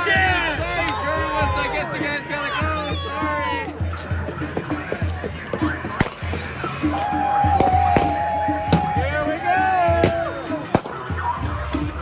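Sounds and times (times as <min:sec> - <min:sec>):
crowd shouting: 0:00.0 - 0:04.5, 0:05.6 - 0:12.0.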